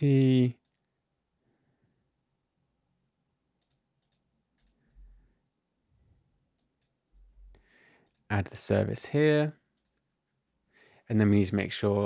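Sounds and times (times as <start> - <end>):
keyboard and mouse clicks: 3.6 - 5.0.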